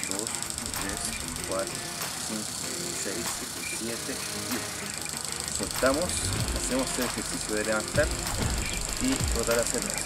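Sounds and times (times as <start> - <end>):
steady high hiss: 0.0 - 10.0.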